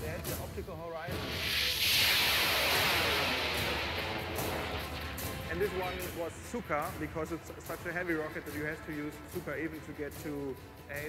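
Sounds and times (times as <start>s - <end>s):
rocket motor roaring hiss: 1.1s - 7.1s.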